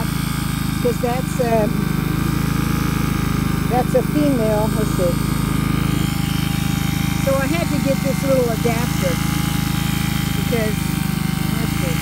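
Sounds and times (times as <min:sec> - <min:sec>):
transfer pump motor running: 0:00.0 - 0:12.0.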